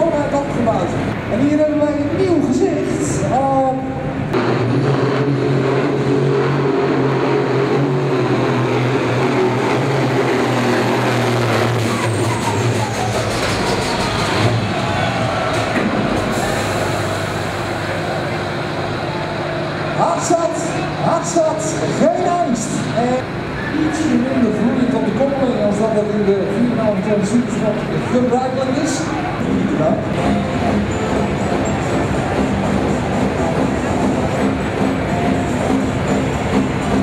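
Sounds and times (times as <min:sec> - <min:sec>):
tractor engine running at high revs: 0:04.1 - 0:20.0, 0:20.6 - 0:37.0.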